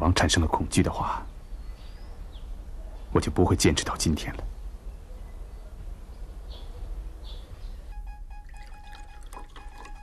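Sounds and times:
coffee pouring into a cup: 8.4s - 10.0s.

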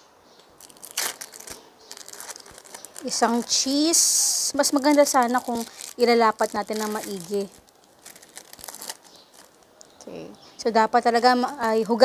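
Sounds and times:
plastic film crinkling: 0.5s - 10.0s, 11.0s - 12.0s.

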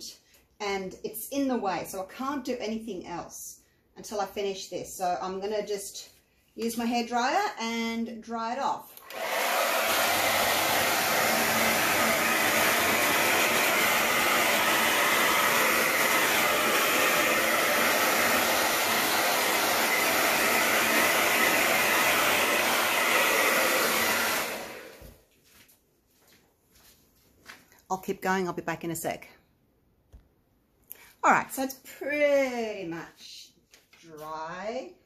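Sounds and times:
hair dryer blowing: 9.0s - 25.2s.

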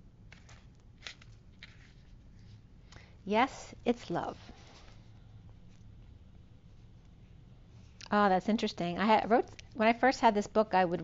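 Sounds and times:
paper rustling and scraping: 0.3s - 2.6s, 4.3s - 5.8s.

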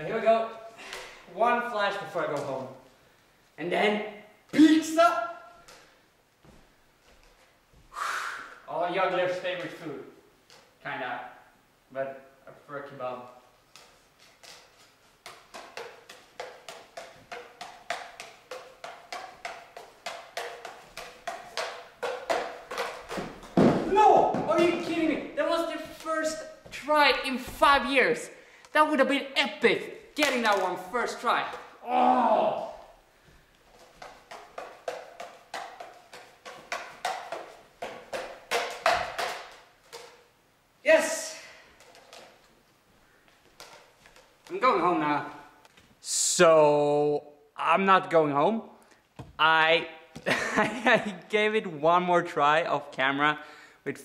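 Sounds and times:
juggling clubs slapping into hands: 0.8s - 1.2s, 1.9s - 2.8s, 4.5s - 7.5s, 9.3s - 9.9s, 13.6s - 40.3s, 40.9s - 42.5s, 43.4s - 45.8s
club crashing to the floor: 22.8s - 24.7s.

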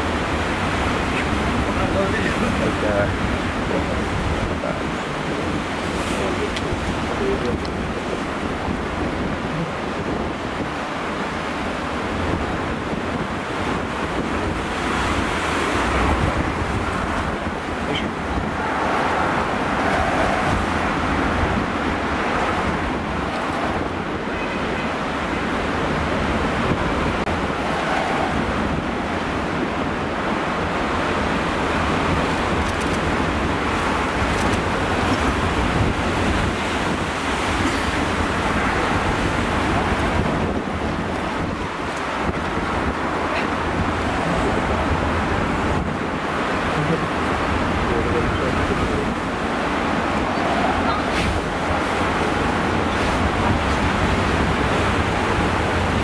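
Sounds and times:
storm surf breaking on rocks: 0.0s - 56.0s
wind buffeting microphone: 0.0s - 56.0s.

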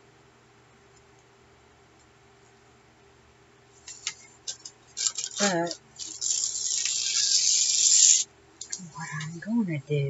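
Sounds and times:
paper sheets rustling: 3.8s - 8.2s.

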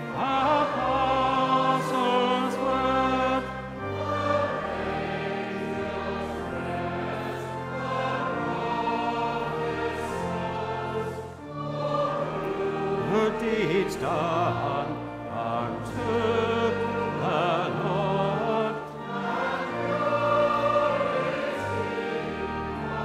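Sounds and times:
choir singing in parts: 0.0s - 23.0s
low organ notes: 0.0s - 23.0s.

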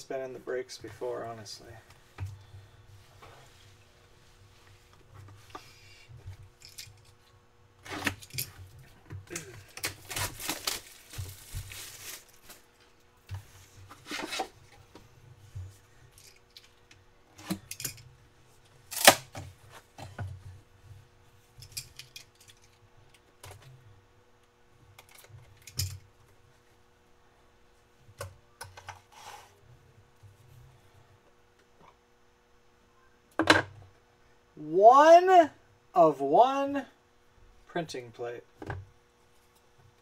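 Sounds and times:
shrink-wrap tearing and crinkling: 9.3s - 12.7s.

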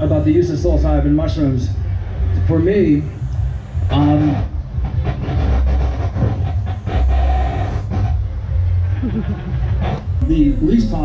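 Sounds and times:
man speaking over loudspeaker: 0.0s - 1.8s, 2.4s - 3.2s, 3.9s - 4.4s, 10.2s - 11.0s
heavy low rumble: 0.0s - 11.0s.

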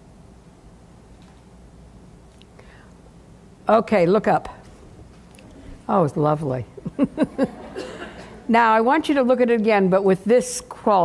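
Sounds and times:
low steady hum: 0.0s - 11.0s
audience rustling: 6.8s - 8.5s.

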